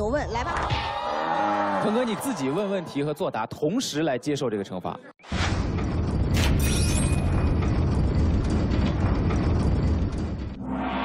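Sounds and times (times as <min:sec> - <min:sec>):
deep noisy rumbling: 0:07.2 - 0:11.0.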